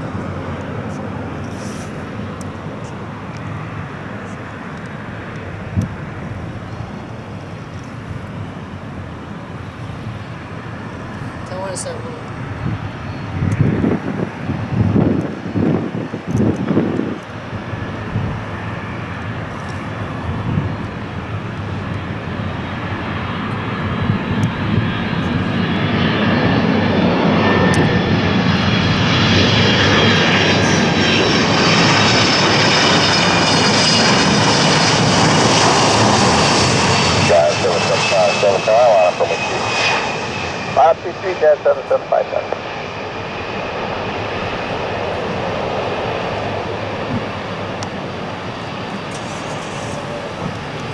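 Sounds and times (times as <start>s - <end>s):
high engine whine: 0.0s - 50.9s
jet engines rumbling: 0.0s - 50.9s
low gusty rumbles: 2.0s - 50.9s.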